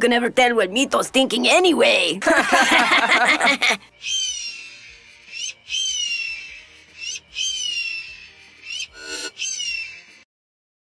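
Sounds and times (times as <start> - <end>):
high whistle-like call: 4.0 - 10.2.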